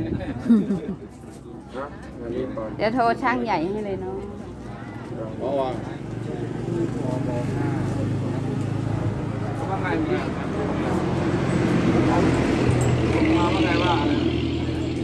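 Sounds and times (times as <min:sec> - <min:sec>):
people talking: 0:00.0 - 0:15.0
vehicle engine running: 0:05.9 - 0:15.0.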